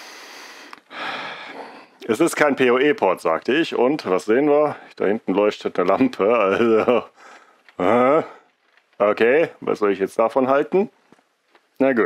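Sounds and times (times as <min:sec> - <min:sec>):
man breathing: 0:00.0 - 0:02.0, 0:07.2 - 0:08.6.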